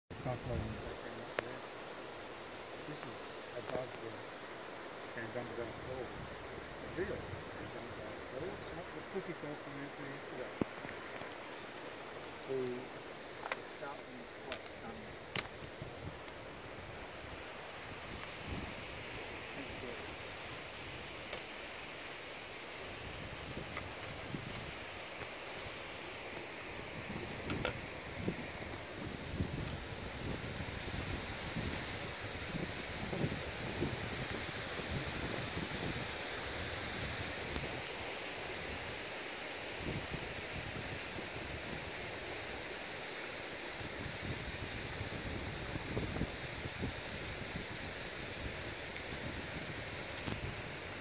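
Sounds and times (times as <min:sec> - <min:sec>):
wind: 0:00.1 - 0:51.0
wind gusts buffeting microphone: 0:00.2 - 0:01.4, 0:02.8 - 0:39.1, 0:39.7 - 0:42.6, 0:43.7 - 0:51.0.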